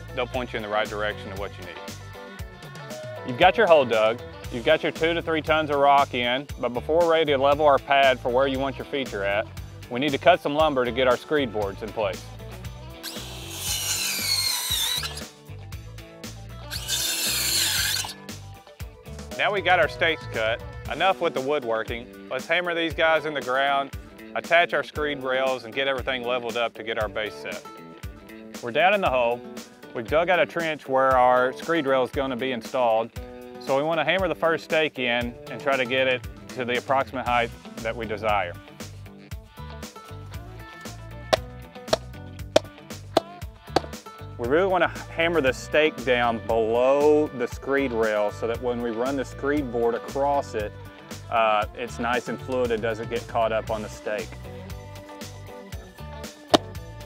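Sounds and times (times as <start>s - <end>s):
background music: 0.0s - 57.0s
circular saw cutting wood: 13.0s - 15.3s, 16.6s - 18.3s
hammer striking wooden stake: 56.5s - 56.8s.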